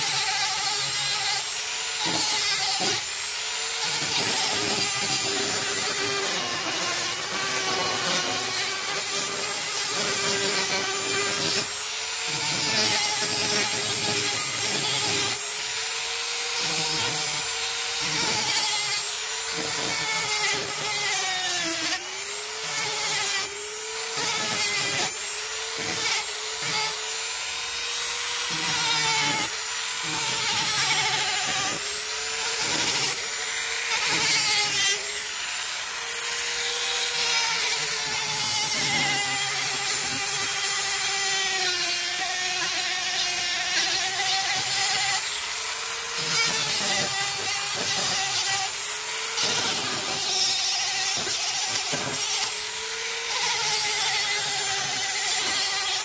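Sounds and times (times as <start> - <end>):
rotary tool motor whine: 0.0 - 56.0
sanding disc rasping on wood: 0.0 - 56.0.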